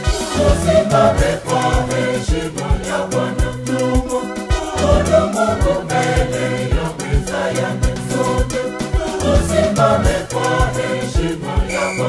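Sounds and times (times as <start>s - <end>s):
choir singing a hymn: 0.0s - 12.0s
steady low drumbeat: 0.1s - 11.5s.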